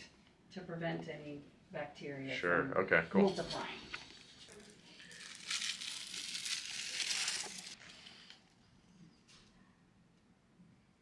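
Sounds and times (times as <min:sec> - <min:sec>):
packaging crinkling and rustling: 0:03.9 - 0:08.4.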